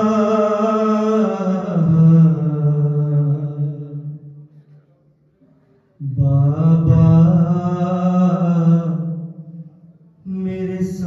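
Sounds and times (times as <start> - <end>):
man chanting a lament: 0.0 - 4.3, 6.0 - 9.6, 10.2 - 11.0.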